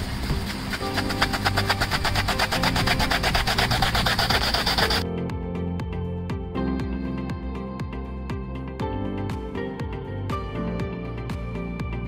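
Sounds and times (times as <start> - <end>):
water spraying hiss: 0.0 - 5.0
background music with steady beat: 0.0 - 12.0.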